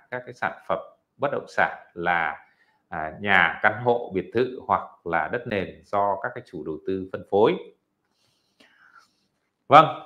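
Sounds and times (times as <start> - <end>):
man speaking: 0.0 - 7.8, 9.7 - 10.0.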